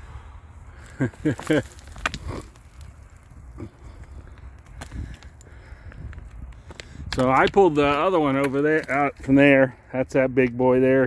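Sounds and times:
person laughing: 0.8 - 2.5
stones and dirt knocking: 0.8 - 9.5
wind rumble on microphone: 2.0 - 9.4.

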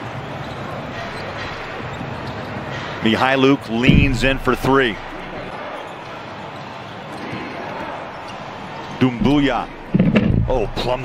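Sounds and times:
murmur of crowd: 0.0 - 11.0
basketball court sounds: 3.8 - 7.5, 9.2 - 11.0.

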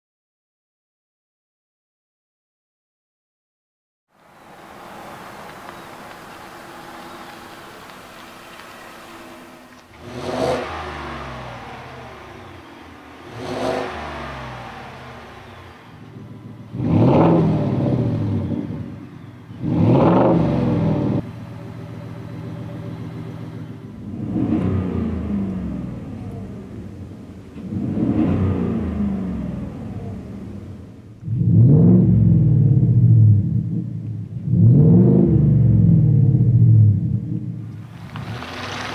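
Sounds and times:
truck engine revving: 4.2 - 38.9.

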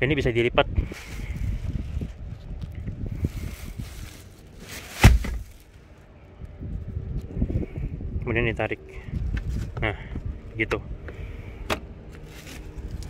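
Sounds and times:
plastic seat cover rustling: 3.2 - 5.8
seatback clunk: 4.8 - 5.6.

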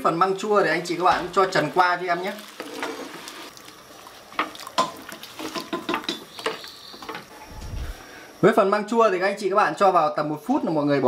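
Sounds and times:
boiling water bubbling: 0.2 - 7.9.

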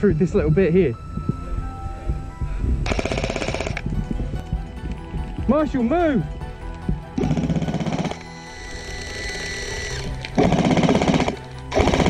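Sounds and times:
airsoft machine gun burst: 2.9 - 3.8, 7.2 - 8.2, 9.3 - 12.0.

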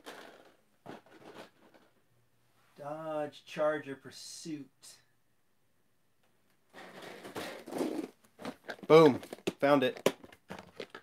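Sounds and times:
rustling and crunching of packaging: 6.8 - 11.0.

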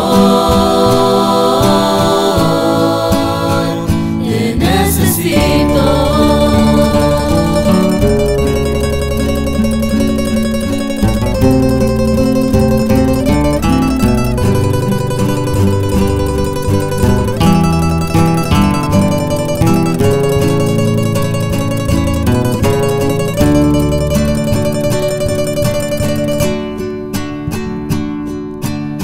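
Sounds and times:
acoustic guitar ensemble playing: 0.0 - 29.0.

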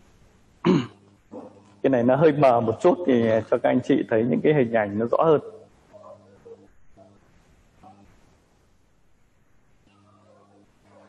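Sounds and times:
man clearing his throat: 0.6 - 1.6
man speaking: 1.4 - 6.6.

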